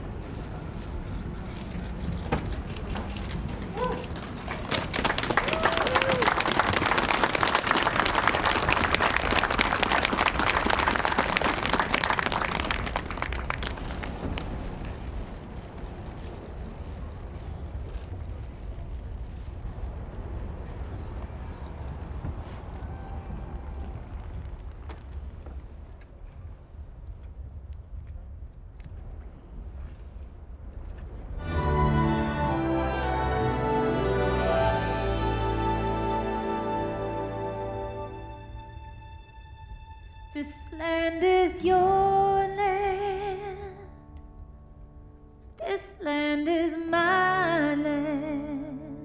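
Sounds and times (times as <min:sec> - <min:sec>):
wind rumble on microphone: 0:00.0 - 0:32.6
faint outdoor background noise: 0:00.0 - 0:49.0
audience applauding: 0:03.3 - 0:14.6, 0:31.4 - 0:38.6.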